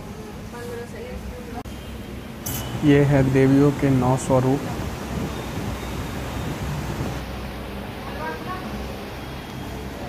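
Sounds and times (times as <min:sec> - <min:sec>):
wind buffeting microphone: 0:04.0 - 0:07.2.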